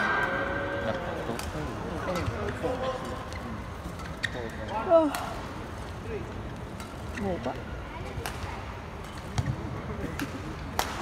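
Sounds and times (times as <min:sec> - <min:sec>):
rackets hitting shuttlecock: 0:09.3 - 0:11.0.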